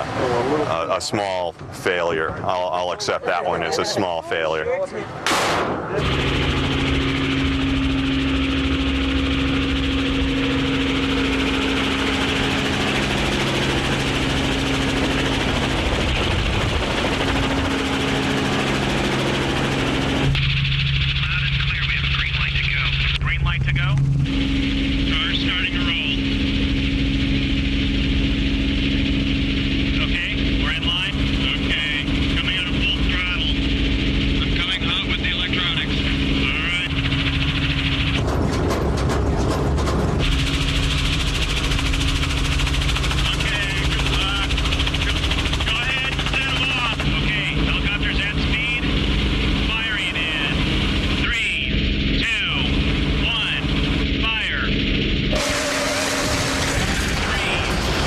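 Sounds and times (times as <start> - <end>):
muffled voices: 0.0 - 5.1, 21.1 - 24.4, 25.0 - 26.3, 30.0 - 33.7, 34.4 - 37.2, 43.2 - 54.8, 56.8 - 57.8
steady engine hum: 0.0 - 58.0
rushing noise: 54.9 - 58.0.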